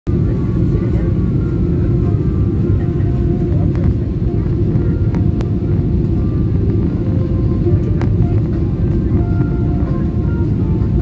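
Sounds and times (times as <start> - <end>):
airliner cabin rumble: 0.1 - 11.0.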